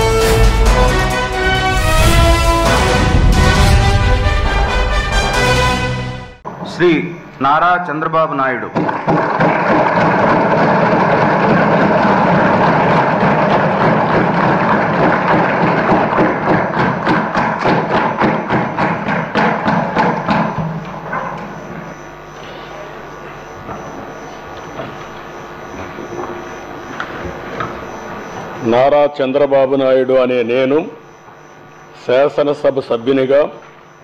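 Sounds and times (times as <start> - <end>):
hall noise: 0.0 - 32.4
desks thumping and applause: 8.4 - 28.9.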